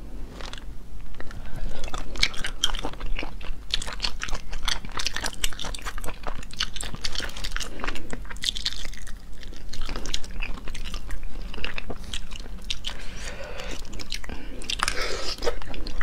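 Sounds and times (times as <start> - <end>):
wet chewing and biting: 0.4 - 16.0.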